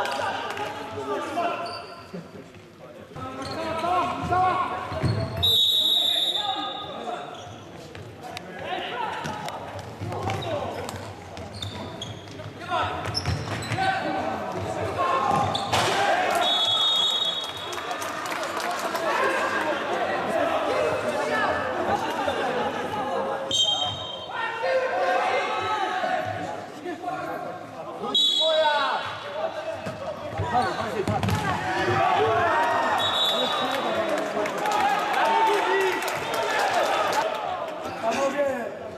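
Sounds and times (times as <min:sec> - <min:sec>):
referee's whistle: 0:05.1 - 0:07.0, 0:16.4 - 0:17.6, 0:23.5 - 0:24.4, 0:28.1 - 0:28.8, 0:32.9 - 0:34.0
players shouting: 0:13.8 - 0:17.4, 0:23.6 - 0:26.6, 0:28.0 - 0:38.3.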